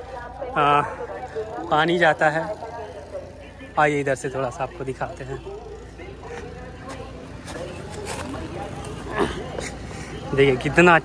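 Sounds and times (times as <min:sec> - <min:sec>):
faint distant voices: 0:00.0 - 0:11.0
footsteps: 0:06.3 - 0:09.7.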